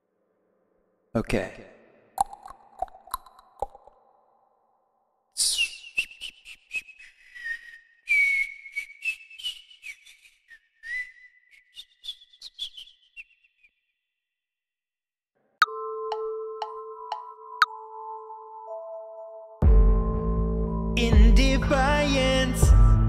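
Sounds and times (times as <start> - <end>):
high whistling tone: 5.4 - 13.8.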